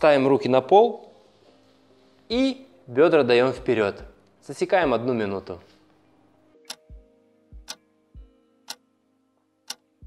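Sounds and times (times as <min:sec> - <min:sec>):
soft background music: 0:00.0 - 0:10.0
clock ticking: 0:06.7 - 0:07.0, 0:09.7 - 0:09.9.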